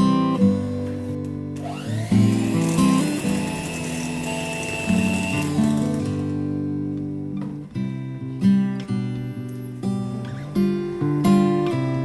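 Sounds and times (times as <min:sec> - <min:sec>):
acoustic guitar music: 0:00.0 - 0:12.0
electric hand mixer whining: 0:01.6 - 0:06.5.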